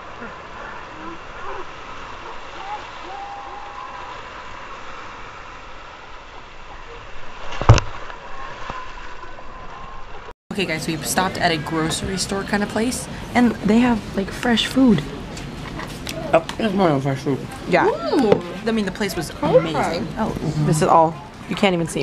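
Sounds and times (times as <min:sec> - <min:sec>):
faint voices: 0:00.0 - 0:04.3, 0:10.5 - 0:22.0
ocean surf breaking: 0:00.0 - 0:22.0.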